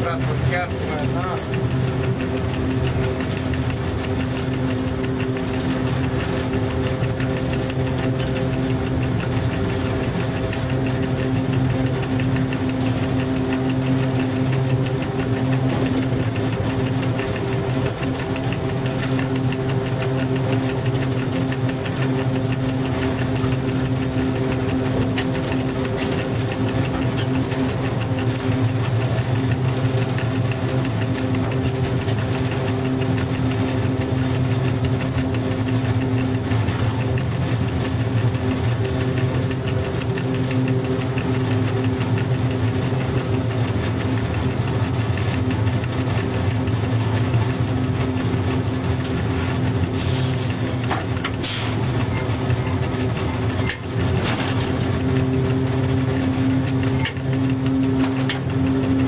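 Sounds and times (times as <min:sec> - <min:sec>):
electric locomotive hum: 0:00.0 - 0:59.0
wheels running on rails: 0:00.0 - 0:59.0.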